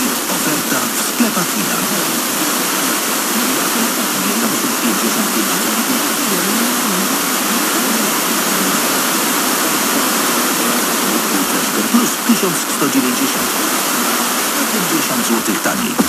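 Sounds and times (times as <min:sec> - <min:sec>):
faint wavering radio programme audio: 0:00.0 - 0:16.0
radio static hiss: 0:00.0 - 0:16.0.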